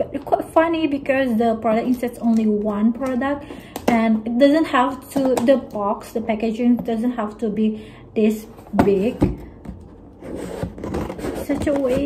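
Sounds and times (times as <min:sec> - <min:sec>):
scissors cutting cardboard: 0:10.2 - 0:12.0.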